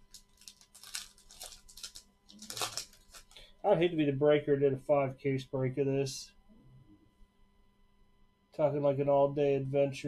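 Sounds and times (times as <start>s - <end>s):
paper wrapper rustling: 0.0s - 3.4s.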